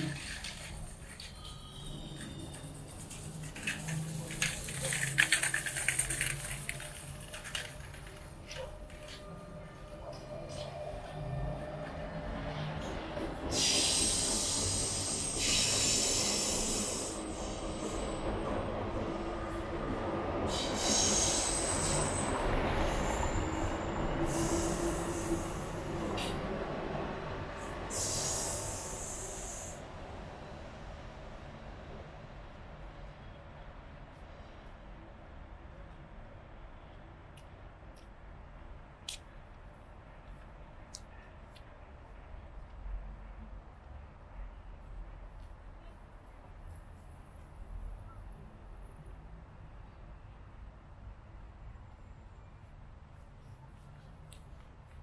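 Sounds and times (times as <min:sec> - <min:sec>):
high-pitched wheel squeals: 0:00.0 - 0:05.1
train running on rails: 0:00.0 - 0:55.0.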